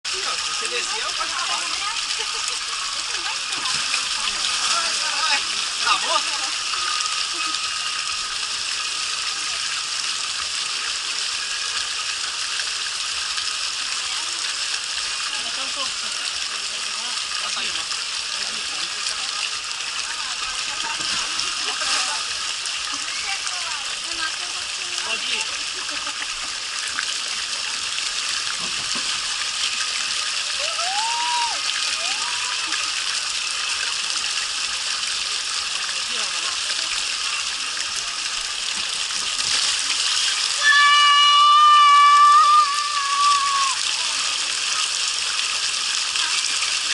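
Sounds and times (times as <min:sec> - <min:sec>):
water running down a slide: 0:00.1 - 0:46.9.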